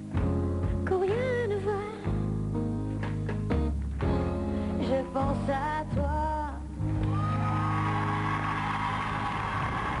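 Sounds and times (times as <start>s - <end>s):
audience cheering and applause: 7.0s - 10.0s.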